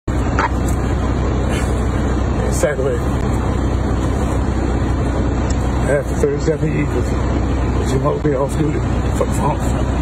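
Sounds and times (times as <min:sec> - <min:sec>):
car engine idling: 0:00.1 - 0:10.0.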